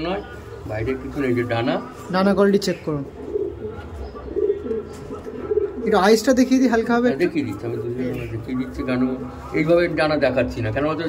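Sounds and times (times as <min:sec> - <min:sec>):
pigeons cooing: 0:00.0 - 0:10.1.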